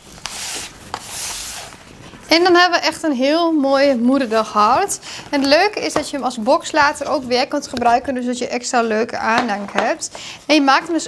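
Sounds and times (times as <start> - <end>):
soft rubbing rustles: 0.0 - 8.1.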